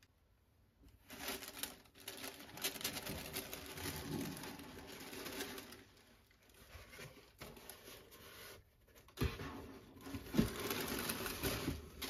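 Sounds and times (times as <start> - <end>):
tissue paper rustling: 0.9 - 12.0.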